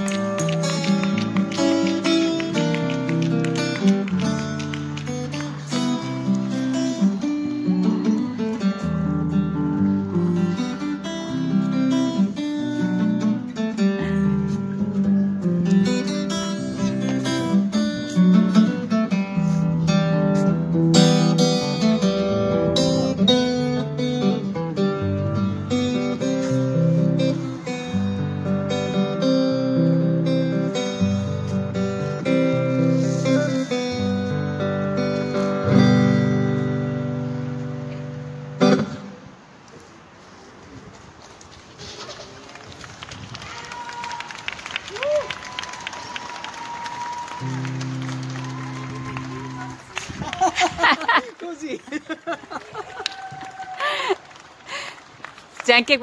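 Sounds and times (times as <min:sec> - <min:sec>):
acoustic guitar melody: 0:00.0 - 0:39.6, 0:47.4 - 0:50.2.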